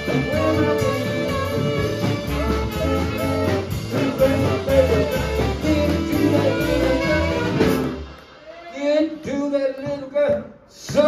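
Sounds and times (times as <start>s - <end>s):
electric guitar: 0.0s - 8.3s
blues band playing: 0.0s - 9.5s.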